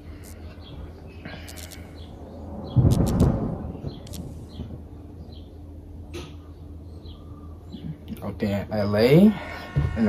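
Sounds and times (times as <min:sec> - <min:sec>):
faint steady hum: 0:00.0 - 0:10.0
thunderclap with sharp cracks: 0:02.5 - 0:04.8.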